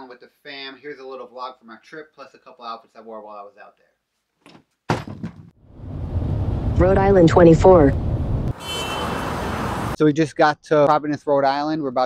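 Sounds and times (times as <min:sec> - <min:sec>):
city street traffic: 0:05.7 - 0:10.0.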